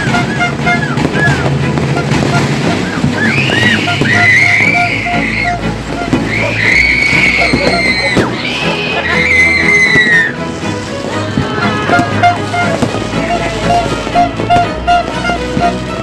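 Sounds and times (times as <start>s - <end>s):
low rumbling background: 0.0s - 16.0s
whistling fireworks: 0.0s - 16.0s
shrill held whistles: 0.3s - 1.5s, 2.7s - 10.4s.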